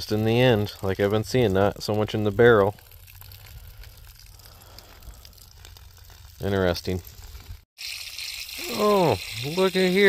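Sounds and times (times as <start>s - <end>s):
background hiss: 7.8s - 10.0s.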